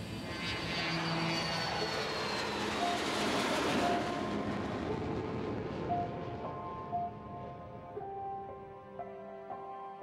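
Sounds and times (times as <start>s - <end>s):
jet engine roar: 0.0s - 7.8s.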